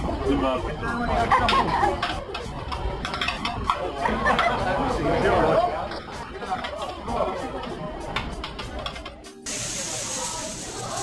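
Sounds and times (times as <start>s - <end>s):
indistinct voices chattering: 0.0s - 11.0s
steady hiss: 9.5s - 11.0s.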